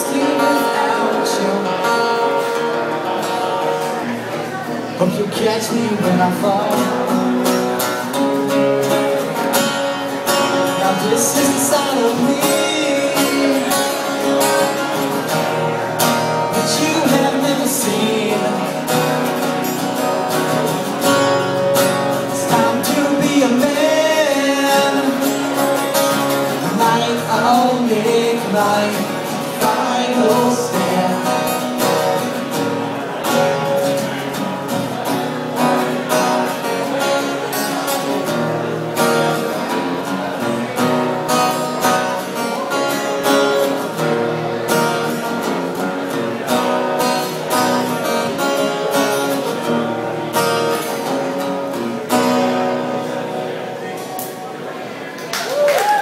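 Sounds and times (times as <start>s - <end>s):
person singing: 0.0s - 3.5s, 10.4s - 14.9s, 16.2s - 19.3s, 22.0s - 32.2s
acoustic guitars playing: 0.0s - 56.0s.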